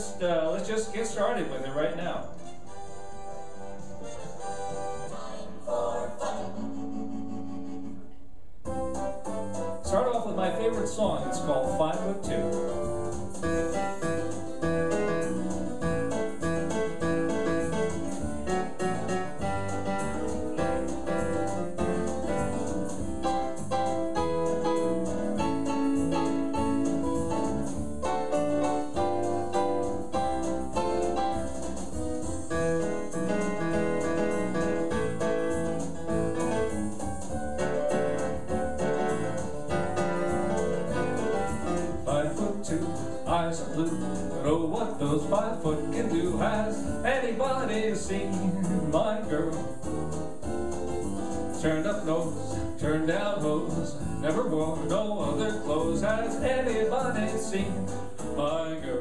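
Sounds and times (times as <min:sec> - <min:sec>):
electronic backing track: 0:00.0 - 0:59.0
electronic keyboard playing: 0:08.7 - 0:52.8.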